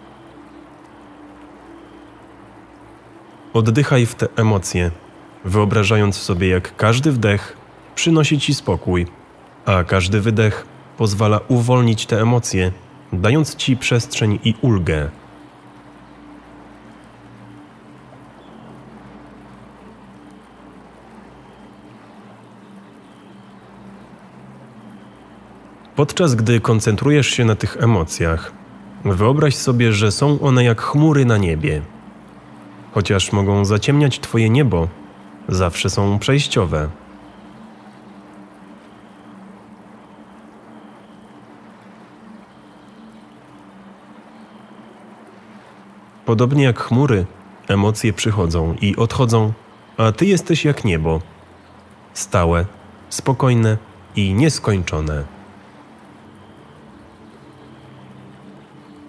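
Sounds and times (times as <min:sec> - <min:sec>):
low drone: 0:00.0 - 0:59.0
running water: 0:00.0 - 0:59.0.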